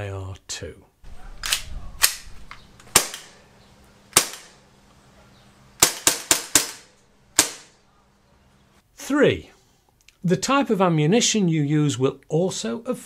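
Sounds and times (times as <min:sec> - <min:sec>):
air pistol shots cracking: 0:01.4 - 0:03.4, 0:04.1 - 0:04.6, 0:05.8 - 0:07.8.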